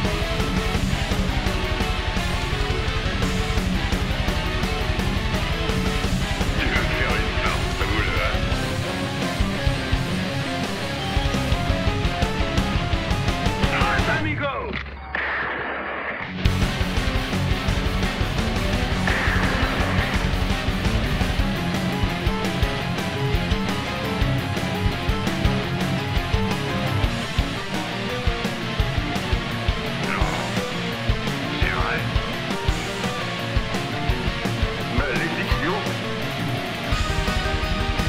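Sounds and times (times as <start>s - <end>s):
distorted electric guitar riffing: 0.0s - 14.2s, 16.3s - 38.0s.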